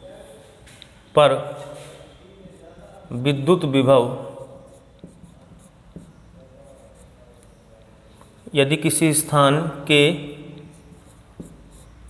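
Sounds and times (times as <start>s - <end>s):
marker writing on whiteboard: 1.4s - 12.0s.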